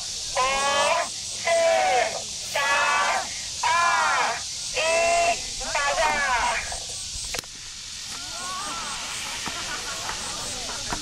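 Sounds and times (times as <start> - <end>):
crowd chanting countdown: 0.0 - 6.8.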